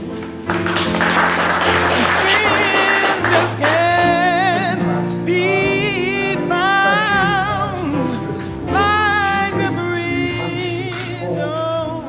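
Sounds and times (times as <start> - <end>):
voices singing together: 1.7 - 12.0.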